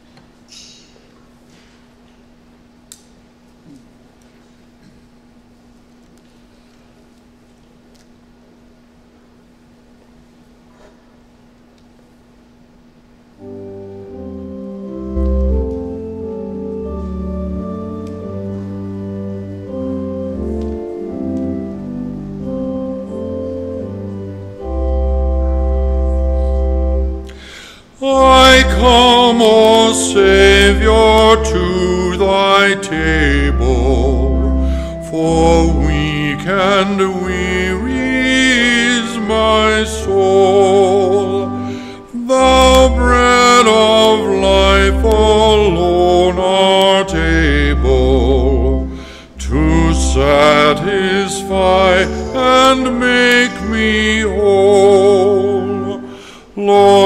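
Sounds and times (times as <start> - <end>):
organ playing slow chords: 11.1 - 57.0
sustained low bass notes: 13.4 - 27.4, 28.0 - 56.1
hymn singing: 13.4 - 57.0
instrumental accompaniment: 13.4 - 57.0.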